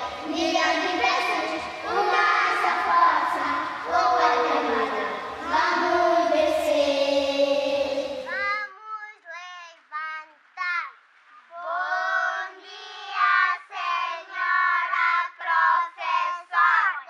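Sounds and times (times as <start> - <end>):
young children singing: 0.0 - 10.8, 11.5 - 17.0.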